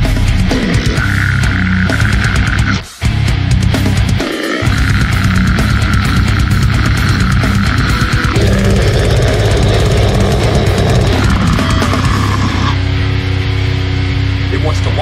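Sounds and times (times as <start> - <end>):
death metal music: 0.0 - 15.0.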